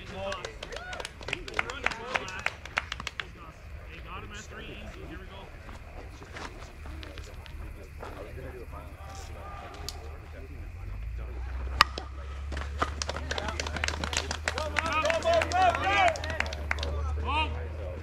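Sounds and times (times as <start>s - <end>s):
voices talking: 0.0s - 18.0s
people shouting: 0.7s - 1.2s, 8.9s - 10.2s, 11.8s - 17.6s
bat striking ball: 11.7s - 16.4s.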